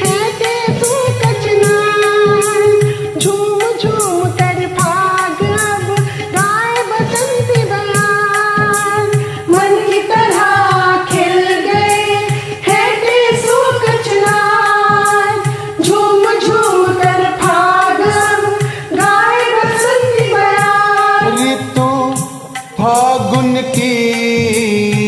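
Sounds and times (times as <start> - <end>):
keyboard accompaniment: 0.0 - 25.0
steady percussion beat: 0.0 - 25.0
voices singing a melody: 0.0 - 25.0.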